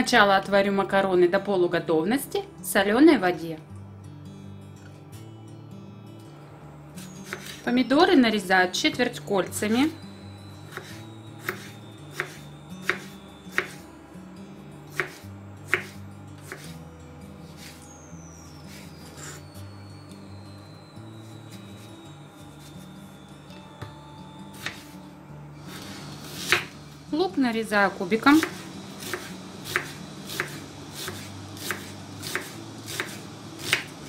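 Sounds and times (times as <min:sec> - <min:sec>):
knife cutting tomato: 0:07.0 - 0:07.6, 0:10.7 - 0:13.8, 0:14.9 - 0:16.8, 0:17.4 - 0:17.8, 0:24.6 - 0:24.9, 0:25.7 - 0:26.8, 0:28.4 - 0:34.0.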